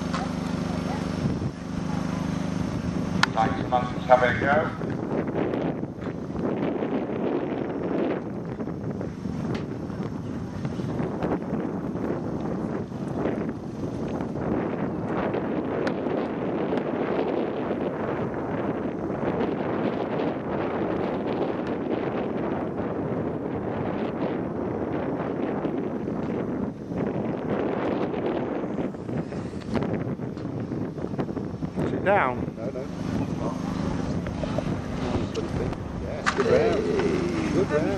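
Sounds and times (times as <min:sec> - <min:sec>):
wind blowing across microphone: 0:00.0 - 0:37.9.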